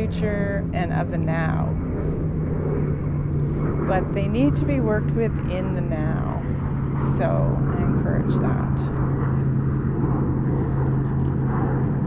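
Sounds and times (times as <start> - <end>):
distant engine drone: 0.0 - 12.0
low rumble: 0.0 - 12.0.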